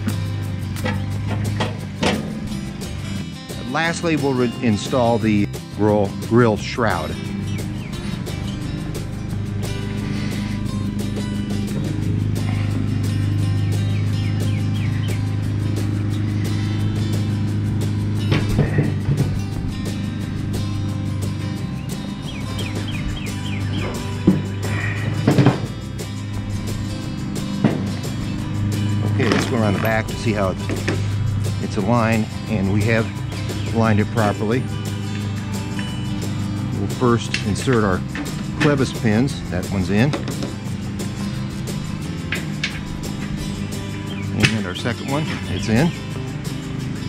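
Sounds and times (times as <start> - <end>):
music with sustained low notes: 0.0 - 47.0
metal grill lid clunks: 0.8 - 2.5, 18.3 - 19.4.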